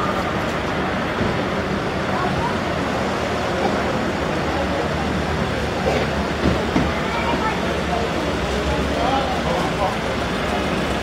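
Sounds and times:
slow-moving and idling cars: 0.0s - 11.0s.

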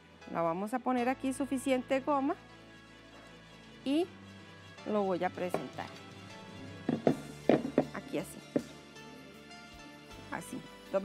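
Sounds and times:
quiet background music: 0.0s - 11.0s
roof tile knocking on table: 6.9s - 8.0s.

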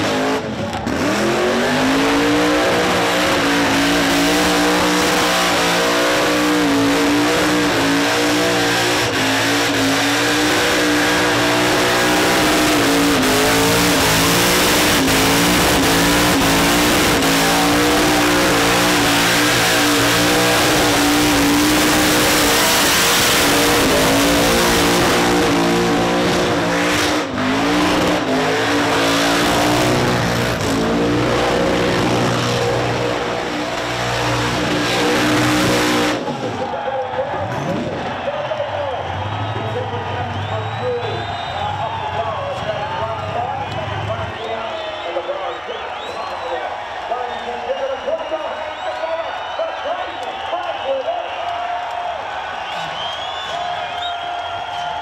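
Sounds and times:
car engine revving high: 0.0s - 36.8s.

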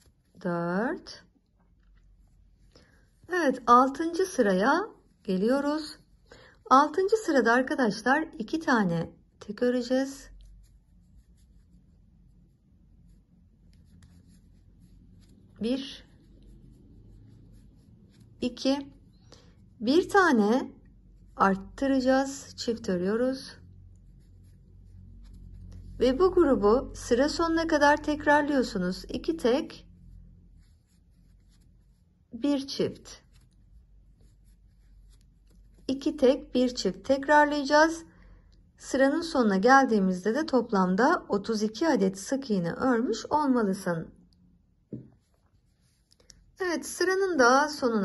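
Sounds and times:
crochet hook rubbing yarn: 0.0s - 38.0s, 44.9s - 48.0s.

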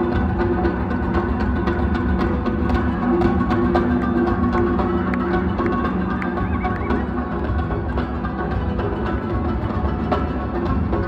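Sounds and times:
live band playing amplified music: 0.0s - 11.0s.

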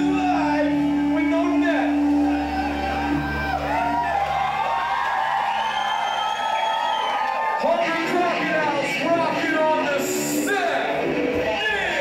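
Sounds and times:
live rock band playing: 0.0s - 5.6s, 7.5s - 12.0s.

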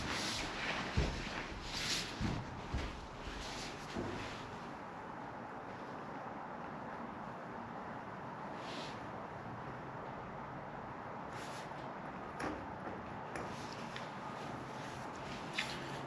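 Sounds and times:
clothing rustling: 0.0s - 4.8s
steady background hiss: 0.0s - 12.4s.

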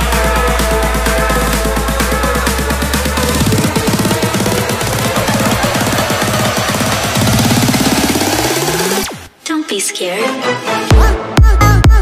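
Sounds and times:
electronic dance music: 0.0s - 9.3s.

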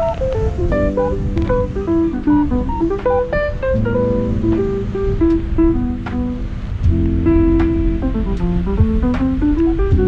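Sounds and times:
light percussion ticks: 0.0s - 3.9s, 4.5s - 10.0s
plucked guitar melody: 0.0s - 10.0s
bass line: 0.7s - 10.0s.

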